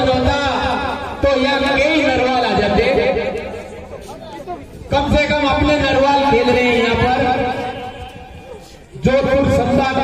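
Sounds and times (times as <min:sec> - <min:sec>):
crowd chatter: 0:00.0 - 0:10.0
man commentating: 0:09.0 - 0:10.0.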